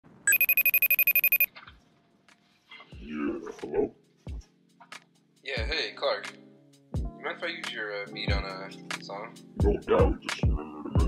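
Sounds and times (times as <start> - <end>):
electronic telephone ringing: 0.3 - 1.5.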